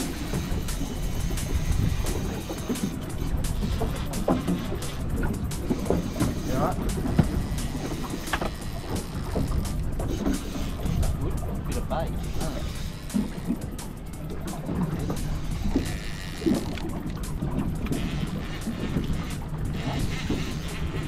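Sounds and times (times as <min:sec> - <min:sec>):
background music: 0:00.0 - 0:21.0
wind and water around a boat: 0:00.0 - 0:21.0.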